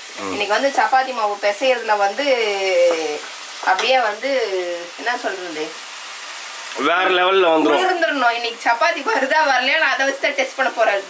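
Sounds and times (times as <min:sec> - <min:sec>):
food sizzling in a pan: 0:00.0 - 0:11.0
woman talking: 0:00.2 - 0:05.8, 0:07.7 - 0:11.0.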